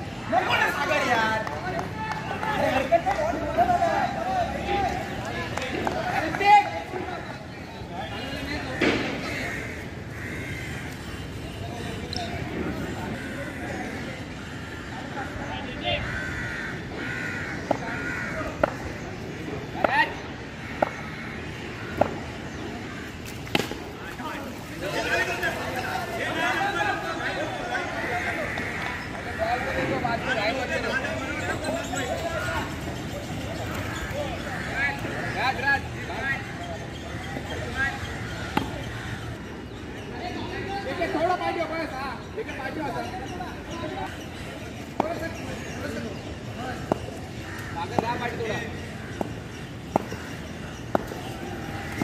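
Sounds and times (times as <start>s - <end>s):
voices: 0.0s - 52.0s
crows cawing: 8.6s - 11.5s, 12.8s - 23.6s, 27.7s - 30.4s, 33.6s - 39.5s, 46.6s - 52.0s
cricket bat hitting ball: 23.4s - 23.9s, 49.2s - 50.2s.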